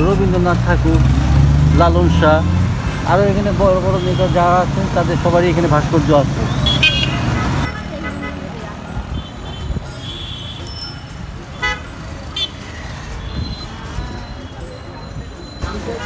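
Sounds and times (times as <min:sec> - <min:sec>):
motorcycle passing: 0:00.0 - 0:09.6
low traffic rumble: 0:00.0 - 0:16.0.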